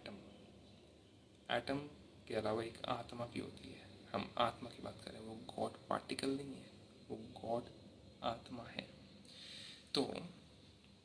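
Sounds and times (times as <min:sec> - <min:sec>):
man speaking: 0:00.0 - 0:00.3, 0:01.5 - 0:08.9, 0:09.9 - 0:10.4
soft intake of breath: 0:09.2 - 0:10.0.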